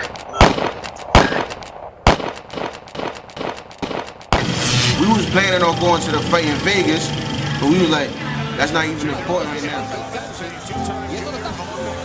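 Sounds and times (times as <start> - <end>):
loud gunshots: 0.0 - 5.1.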